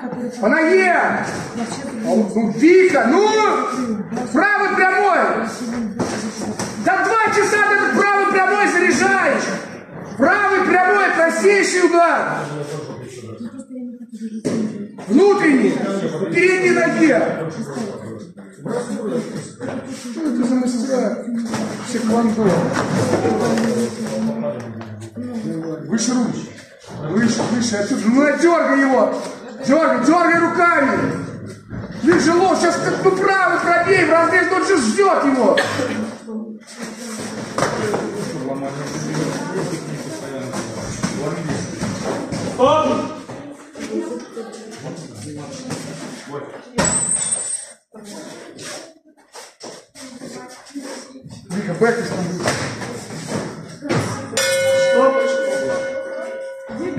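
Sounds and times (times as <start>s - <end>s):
voices echoing in gym hall: 0.0s - 56.9s.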